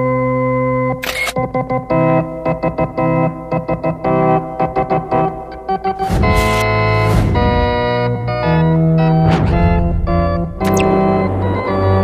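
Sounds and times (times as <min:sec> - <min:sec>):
electronic organ music: 0:00.0 - 0:09.2
camera shutter click: 0:01.0 - 0:01.4, 0:10.7 - 0:10.9.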